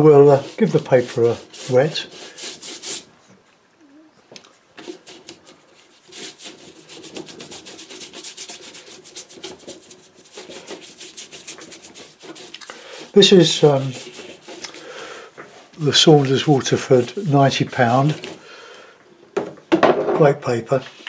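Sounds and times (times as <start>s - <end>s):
brush scrubbing on paper: 0.0s - 3.1s, 4.8s - 15.1s, 15.8s - 18.4s.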